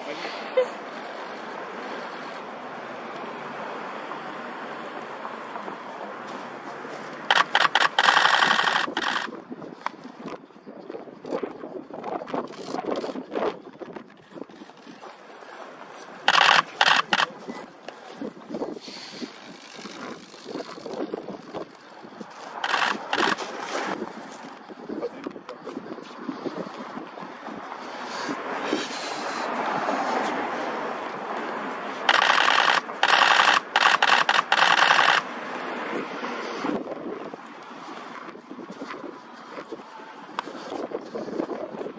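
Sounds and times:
camera shutter bursts: 7.3s - 9.3s, 16.3s - 17.4s, 22.5s - 23.9s, 32.1s - 35.3s.

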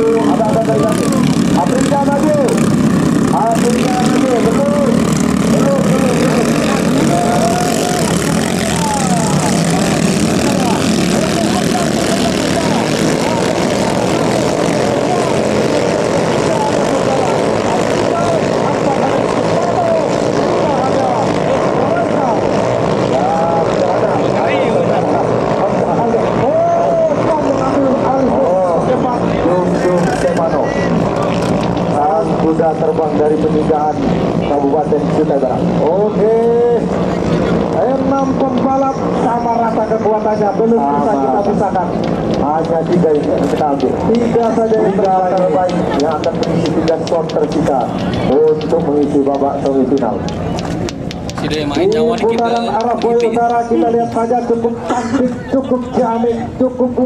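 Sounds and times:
boat engines droning whine: 0.0s - 57.0s.

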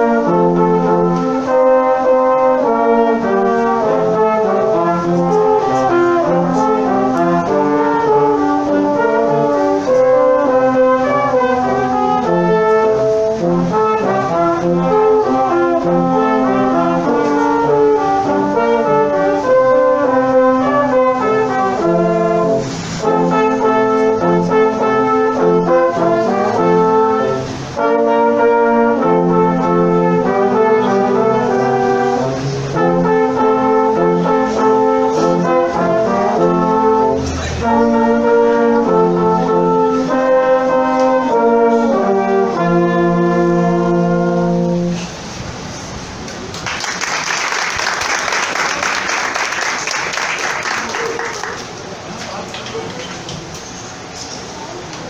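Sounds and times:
brass quintet playing: 0.0s - 52.1s.

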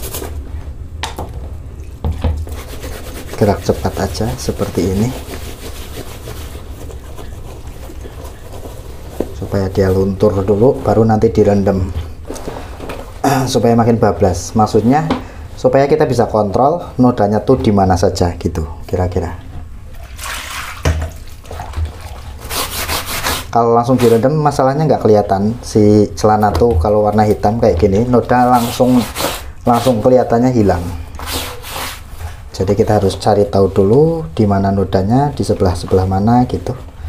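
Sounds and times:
hand scrubbing wet fabric: 2.4s - 11.2s, 19.9s - 24.8s, 26.4s - 34.2s.

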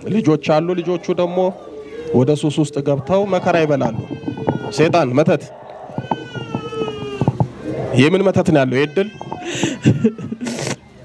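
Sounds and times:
woman wailing: 9.0s - 10.4s.

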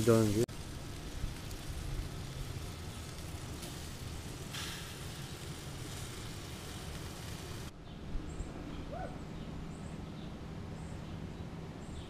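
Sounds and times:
sausages sizzling on grill: 0.0s - 7.7s.

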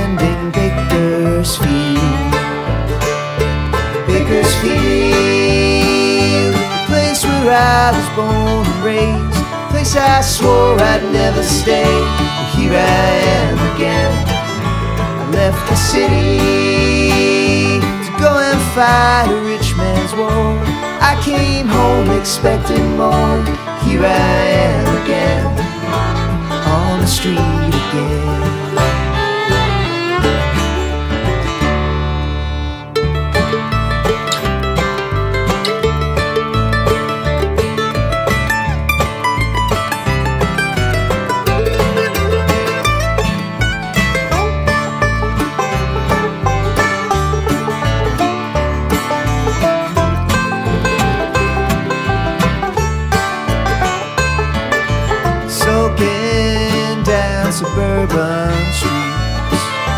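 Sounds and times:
acoustic guitar: 0.0s - 59.9s
banjo: 0.0s - 59.9s
bass: 0.0s - 59.9s
fiddle: 0.0s - 59.9s.

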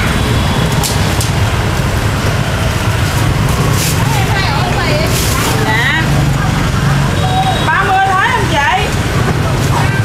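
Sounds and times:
low rumble of street traffic: 0.0s - 10.0s
people talking: 3.6s - 10.0s.

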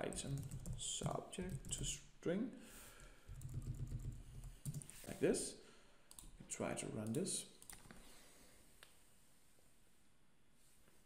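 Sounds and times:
computer keyboard typing: 0.0s - 2.0s, 3.3s - 4.9s, 7.0s - 7.9s.

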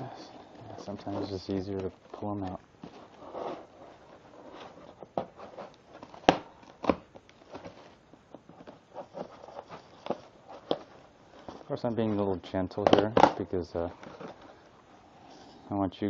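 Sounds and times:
cardboard rustling and scraping: 0.3s - 14.7s.

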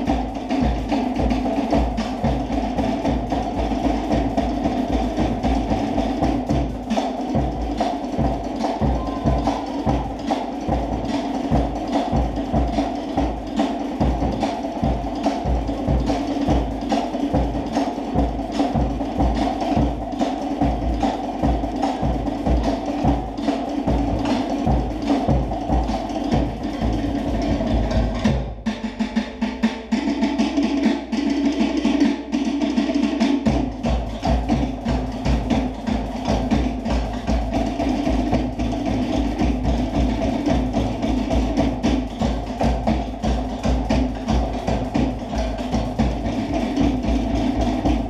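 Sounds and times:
low drum beats: 0.0s - 30.0s, 33.4s - 48.0s.

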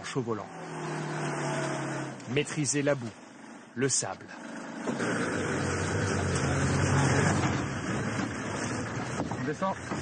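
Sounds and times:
engine running under load: 0.0s - 10.0s.

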